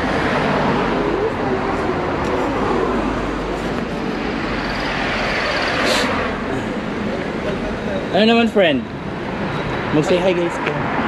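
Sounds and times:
steady traffic hum: 0:00.0 - 0:11.0.

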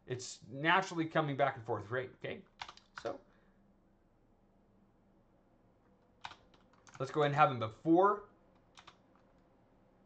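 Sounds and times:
keyboard keystroke clicks: 0:06.2 - 0:07.1, 0:08.6 - 0:09.4.

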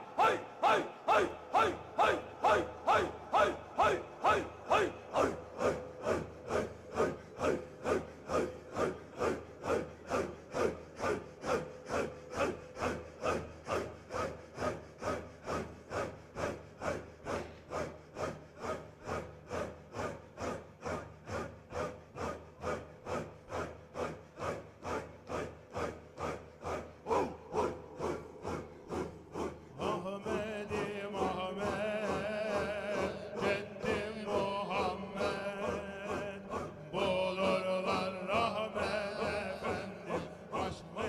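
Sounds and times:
men breathing rhythmically in unison: 0:00.0 - 0:41.0.

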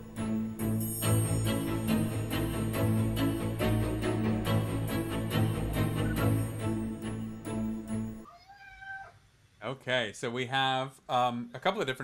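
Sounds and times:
background music: 0:00.0 - 0:08.3
faint cat meow: 0:08.2 - 0:09.2.

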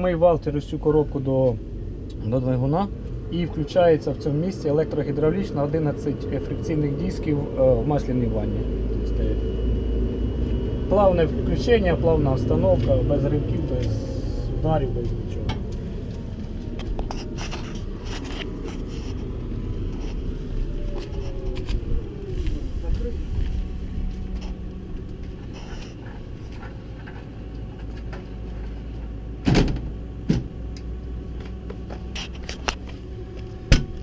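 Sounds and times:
tractor diesel engine running: 0:00.0 - 0:34.0.

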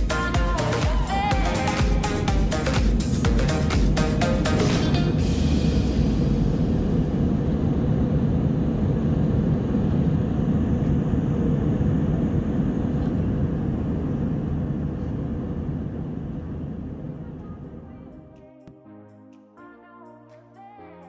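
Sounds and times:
airliner cabin drone: 0:00.0 - 0:18.7.

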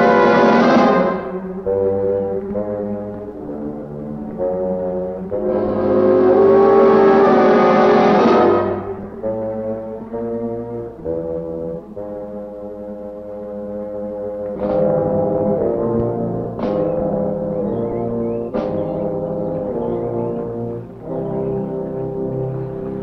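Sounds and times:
dramatic horror score low brass: 0:00.0 - 0:23.0.

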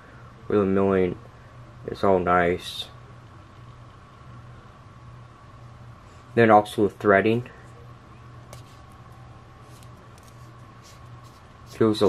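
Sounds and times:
room tone hum and hiss: 0:00.0 - 0:12.0.

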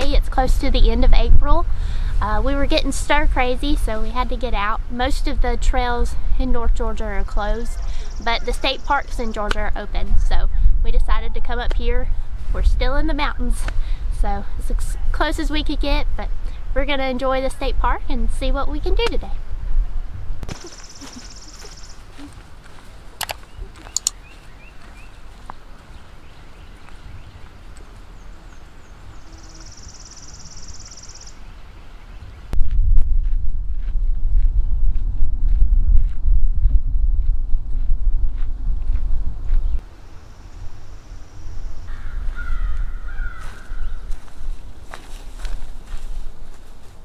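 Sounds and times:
wind buffeting microphone: 0:00.0 - 0:29.2, 0:31.5 - 0:39.8, 0:40.6 - 0:47.0
birds singing: 0:07.1 - 0:09.5, 0:20.5 - 0:22.4, 0:23.2 - 0:32.6, 0:39.5 - 0:44.3
footsteps on dirt path: 0:20.4 - 0:28.6, 0:32.6 - 0:39.8, 0:41.9 - 0:47.0.

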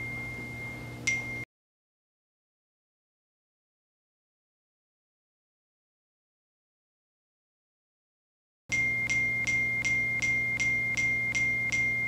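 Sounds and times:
low steady hum: 0:00.0 - 0:01.5, 0:08.7 - 0:12.0.

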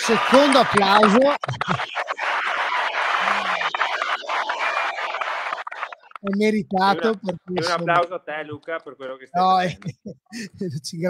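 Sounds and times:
applause: 0:00.0 - 0:08.0.

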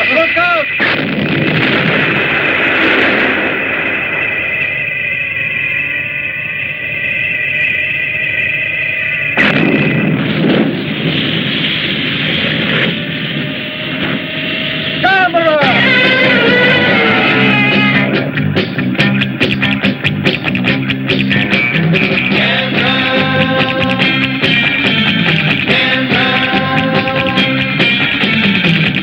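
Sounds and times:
steady high tone: 0:00.0 - 0:00.9, 0:02.2 - 0:19.4, 0:21.1 - 0:29.0
explosions: 0:00.7 - 0:05.8, 0:09.4 - 0:15.1
crashing debris: 0:00.8 - 0:05.0.

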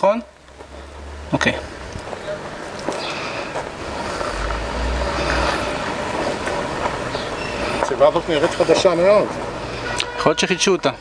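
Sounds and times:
traffic background: 0:00.0 - 0:11.0
heavy vehicle engine rumble: 0:00.3 - 0:10.2.

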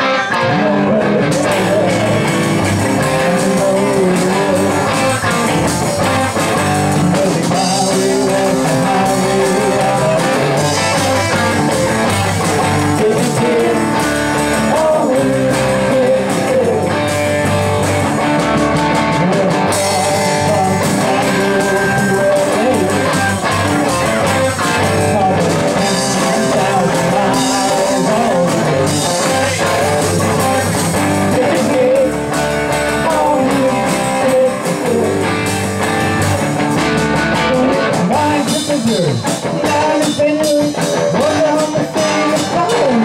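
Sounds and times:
electric guitars: 0:00.0 - 0:43.0
drum kit beat: 0:00.9 - 0:43.0.

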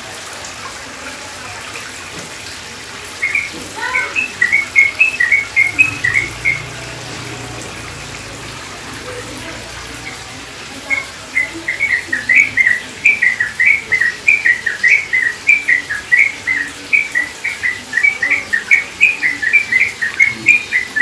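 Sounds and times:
songbird chirping: 0:03.1 - 0:08.5, 0:10.0 - 0:21.0.

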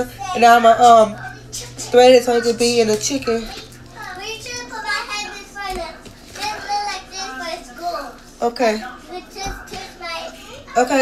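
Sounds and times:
child-like voices talking: 0:00.0 - 0:11.0.

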